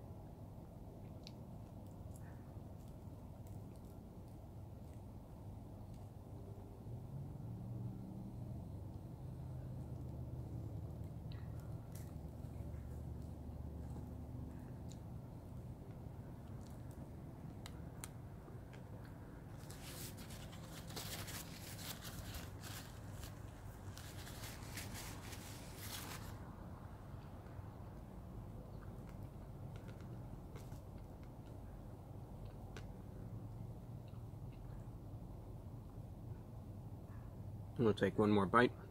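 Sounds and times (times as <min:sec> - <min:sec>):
low steady hum: 0:00.0 - 0:38.9.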